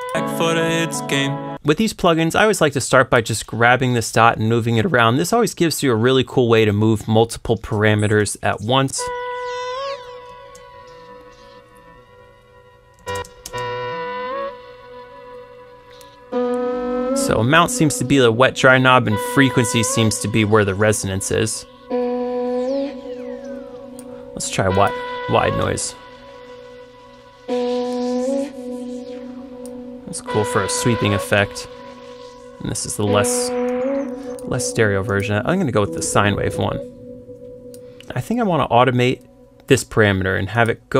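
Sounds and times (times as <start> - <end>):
synthesized vocal note: 16.3 - 39.4
sweeping noise hiss: 22.9 - 40.6.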